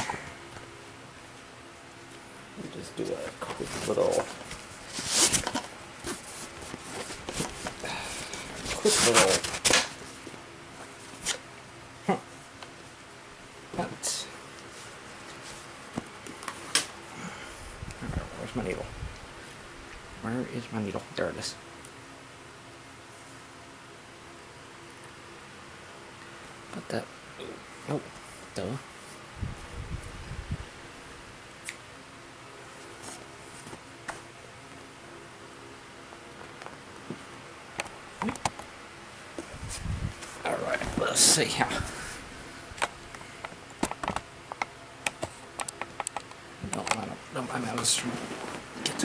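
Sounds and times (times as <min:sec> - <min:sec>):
faint hum: 0:00.0 - 0:49.0
rustling on cloth-covered table: 0:03.4 - 0:11.4.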